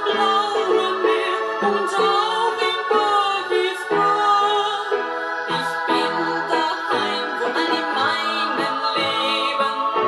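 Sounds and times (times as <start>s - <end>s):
music with singing from a record: 0.0s - 10.0s.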